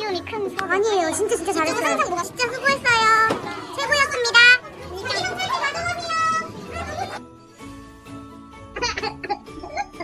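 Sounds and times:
lively women's chatter: 0.0s - 7.3s.

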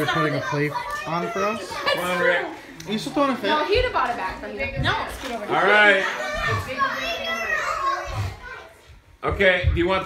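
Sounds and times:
young children chattering: 0.0s - 9.3s.

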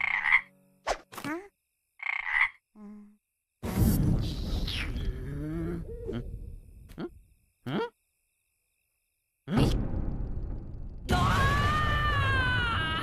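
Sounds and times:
cartoon frog croaks: 0.0s - 3.2s, 4.5s - 8.1s.

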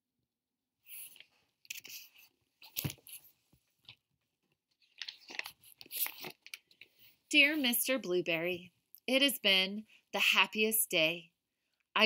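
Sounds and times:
book pages turning: 1.0s - 4.0s, 4.7s - 7.1s.

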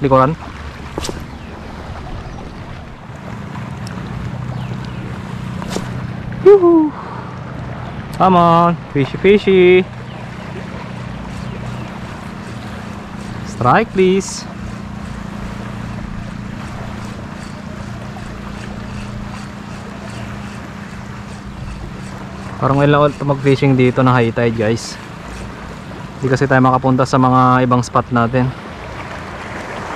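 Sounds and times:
steady low hum: 0.0s - 28.2s
sea water lapping: 0.0s - 29.9s
wind: 0.0s - 29.9s.

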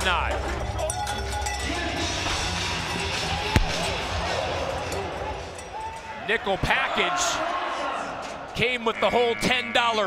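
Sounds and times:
music over loudspeakers: 0.0s - 5.2s
arena crowd noise: 0.0s - 10.0s
sharp thud: 3.6s - 3.9s.

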